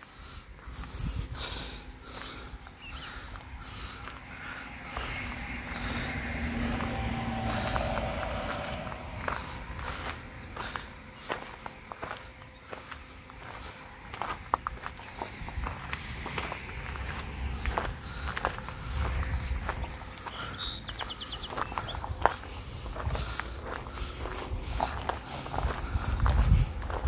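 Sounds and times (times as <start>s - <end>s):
footsteps on gravel: 0.1s - 27.0s
low rumble: 0.8s - 27.0s.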